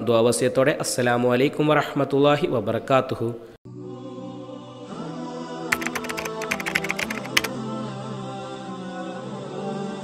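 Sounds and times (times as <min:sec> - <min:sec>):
keyboard key clicks: 0:05.8 - 0:07.6.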